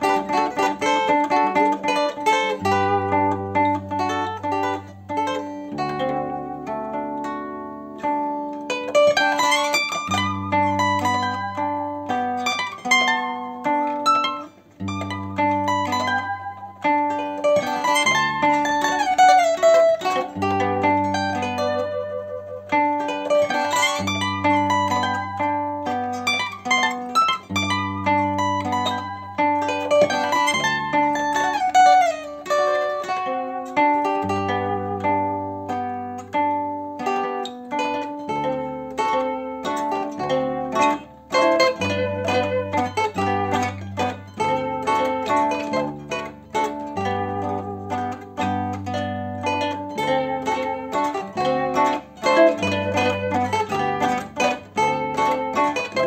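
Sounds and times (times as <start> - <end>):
zither melody: 0.0 - 56.0.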